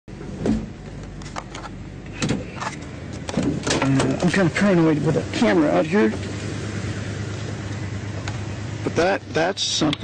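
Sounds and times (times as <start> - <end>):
car interior driving noise: 0.1 - 10.0.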